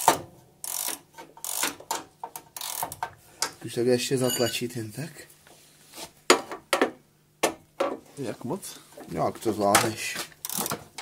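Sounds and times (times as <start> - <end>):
ratcheting wrench clicking: 0.6 - 1.8, 2.6 - 3.0, 10.4 - 10.8.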